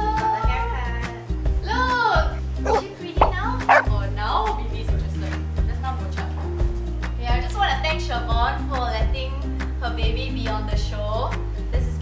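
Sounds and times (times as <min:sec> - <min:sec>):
background music: 0:00.0 - 0:12.0
dog barking and yipping: 0:02.6 - 0:03.9.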